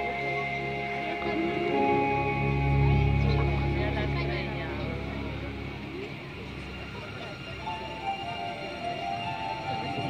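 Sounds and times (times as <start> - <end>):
quiet music: 0.0 - 10.0.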